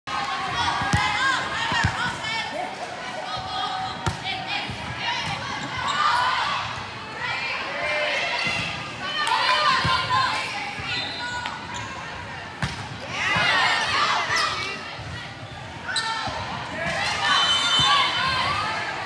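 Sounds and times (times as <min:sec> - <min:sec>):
sneakers squeaking on gym floor: 0:15.4 - 0:16.4.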